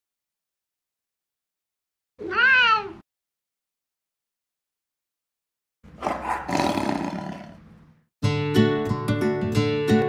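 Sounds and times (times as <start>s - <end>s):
cat meowing: 2.2s - 3.0s.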